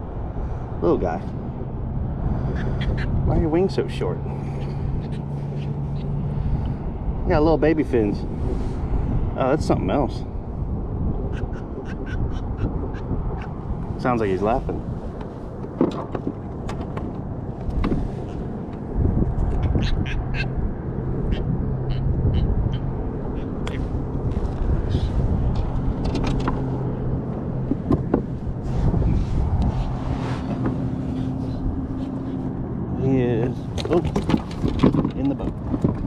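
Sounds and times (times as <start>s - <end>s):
low engine hum: 0.0s - 36.0s
wind on microphone: 0.0s - 36.0s
catfish croaking: 2.5s - 3.2s, 19.6s - 20.6s, 21.2s - 23.8s.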